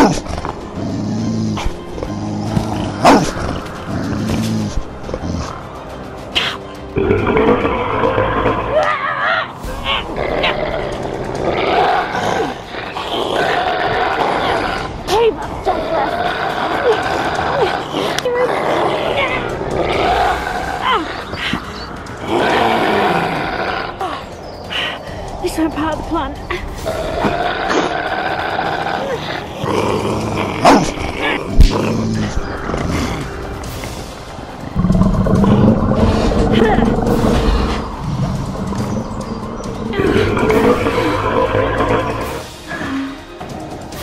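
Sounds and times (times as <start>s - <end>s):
monster growling and snarling: 0.0s - 5.6s, 7.0s - 8.9s, 10.0s - 21.3s, 26.8s - 33.6s, 34.7s - 43.0s
monster growls: 0.0s - 5.7s, 34.7s - 43.2s
background music: 0.0s - 44.0s
monster roar: 34.8s - 42.9s.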